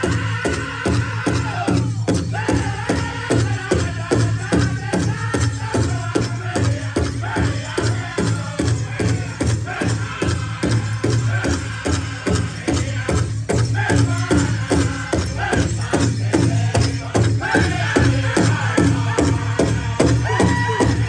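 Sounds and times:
large drum steady beat: 0.0 - 21.0
men singing: 0.0 - 21.0.

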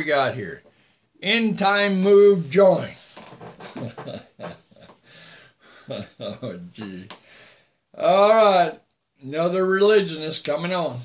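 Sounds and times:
man laughing quietly: 3.6 - 7.1.

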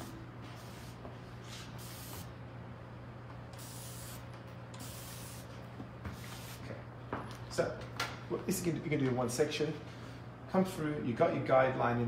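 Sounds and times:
spray bottle hissing spritzes: 3.6 - 5.5.

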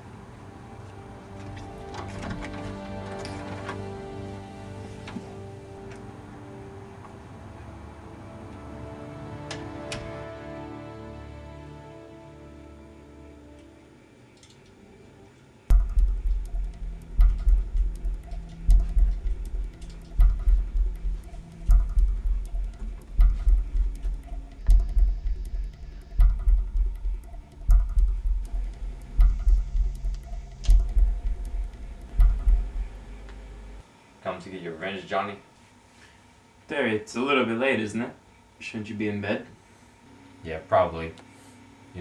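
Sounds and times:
quiet sustained film score: 0.0 - 42.0
heavy pulsing bass drum beat: 15.7 - 33.2.

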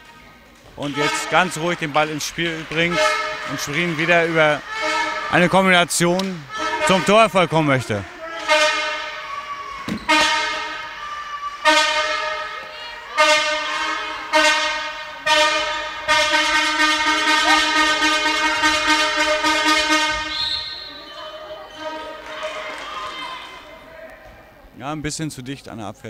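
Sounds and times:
fan horns blowing: 0.8 - 22.2.

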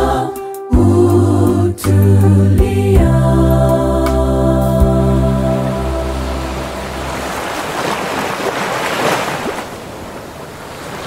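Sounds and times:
male a cappella group chord: 0.0 - 7.0
sea waves washing onto shore: 5.5 - 11.0.

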